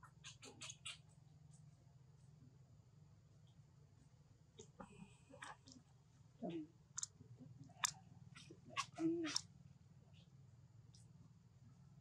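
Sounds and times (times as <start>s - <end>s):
monkey vocal call: 7.8s - 9.4s.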